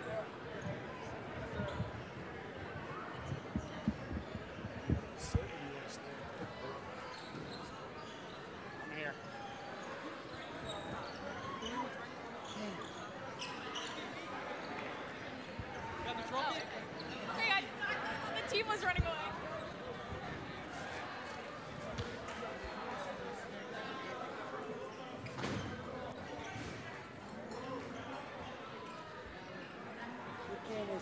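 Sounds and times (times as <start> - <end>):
crowd voices hubbub: 0.0 - 31.0.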